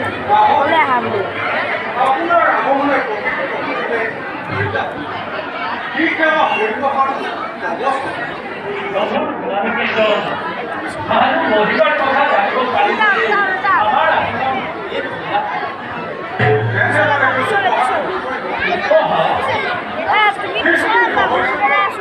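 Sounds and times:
overlapping voices and chatter: 0.0s - 22.0s.

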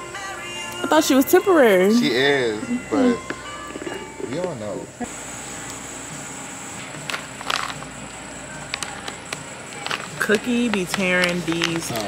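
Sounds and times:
shop background noise: 0.8s - 12.0s
plastic pouch rustling: 7.0s - 7.9s, 8.6s - 12.0s.

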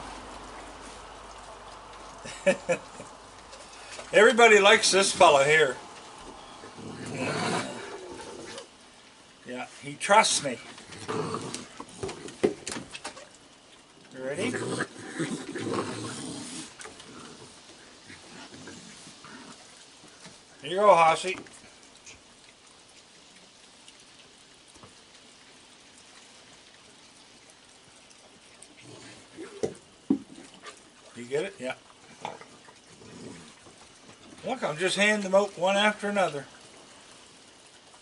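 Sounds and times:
wet chewing and snuffling: 0.0s - 9.2s, 9.8s - 20.7s, 21.3s - 34.5s
raccoons making faint vocal sounds: 4.9s - 9.1s, 10.5s - 20.6s, 26.0s - 31.2s, 31.8s - 34.5s.

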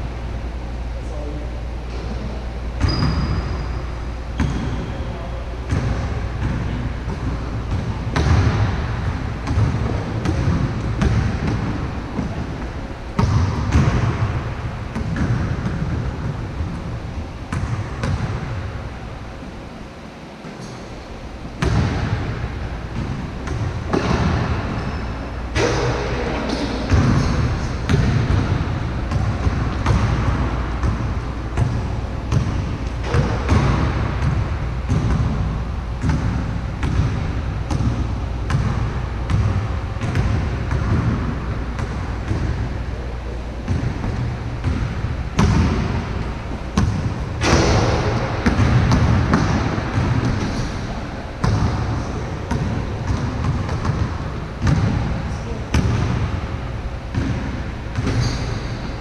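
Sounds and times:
basketball dribbling on court: 2.8s - 3.7s, 4.4s - 5.0s, 5.6s - 19.0s, 21.5s - 42.9s, 43.6s - 58.9s.

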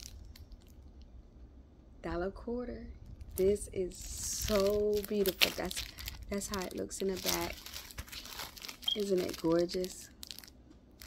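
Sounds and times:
plastic wrap crinkling: 0.0s - 0.9s, 3.0s - 11.0s
low room rumble: 0.0s - 11.0s.

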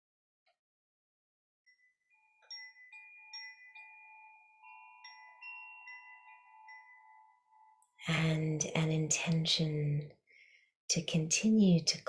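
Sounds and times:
bamboo-tube chime ringing: 1.7s - 8.0s.

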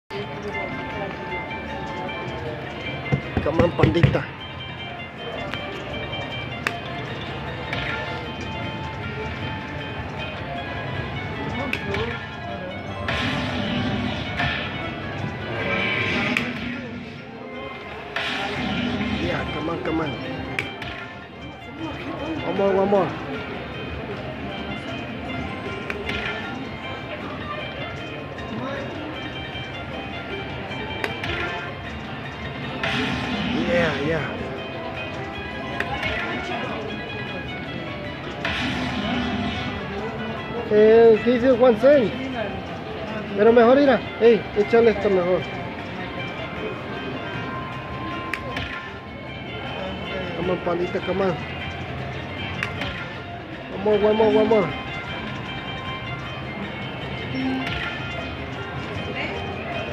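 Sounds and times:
slot machine bonus music: 0.1s - 59.9s.

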